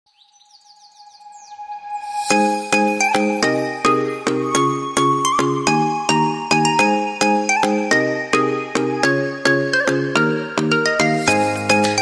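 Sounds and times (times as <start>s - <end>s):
falling bird chirps: 0.1s - 2.5s.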